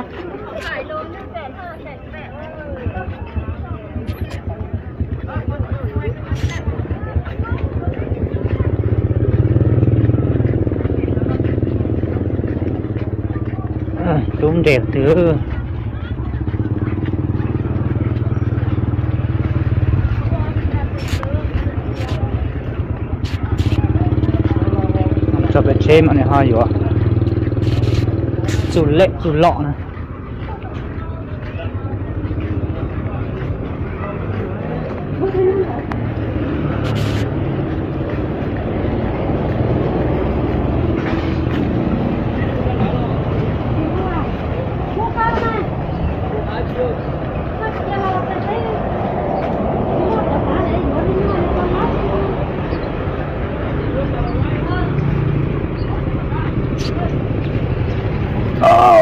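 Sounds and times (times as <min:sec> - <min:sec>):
faint voices: 0:00.0 - 0:59.0
road traffic rumble: 0:00.0 - 0:59.0.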